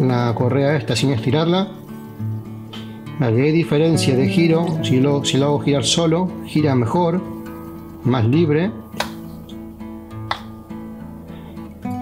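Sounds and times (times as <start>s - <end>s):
acoustic guitar music: 0.0s - 12.0s.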